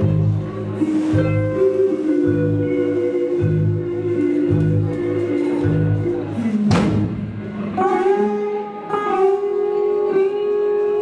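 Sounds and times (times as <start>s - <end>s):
low bass notes: 0.0s - 10.4s
electric guitar lines: 0.0s - 11.0s.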